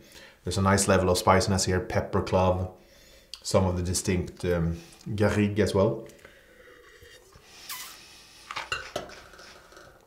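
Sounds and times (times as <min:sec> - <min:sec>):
person slurping wine: 0:06.2 - 0:08.6.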